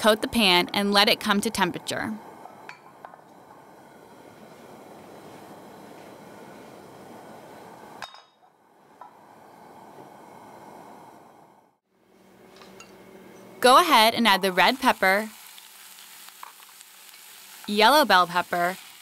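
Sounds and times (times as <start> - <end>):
gas burner hiss: 0.0 - 11.8, 13.7 - 19.0.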